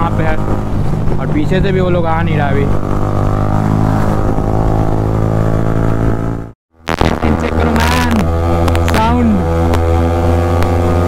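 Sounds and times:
motorcycle engine cruising: 0:00.0 - 0:11.0.

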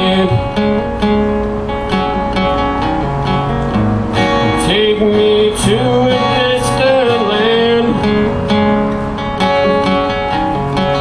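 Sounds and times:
man singing: 0:00.0 - 0:00.6, 0:04.5 - 0:08.4
acoustic guitar strumming: 0:00.0 - 0:11.0.

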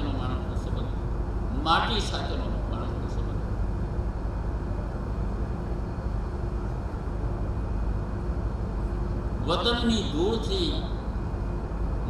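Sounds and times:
faint steady hum: 0:00.0 - 0:12.0
low rumble and hiss: 0:00.0 - 0:12.0.

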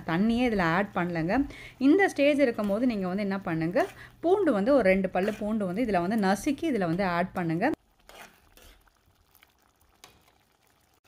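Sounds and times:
faint bubbling of simmering sauce: 0:07.8 - 0:11.0.

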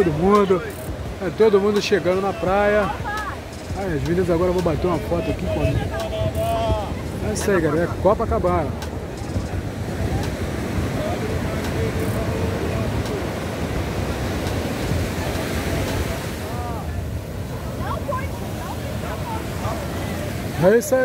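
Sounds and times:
faint voices: 0:00.0 - 0:21.0
surf breaking on beach: 0:00.0 - 0:21.0
wind buffeting microphone: 0:00.0 - 0:21.0.

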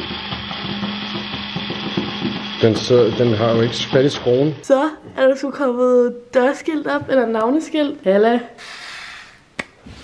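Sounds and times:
electric screwdriver humming: 0:00.0 - 0:04.7.

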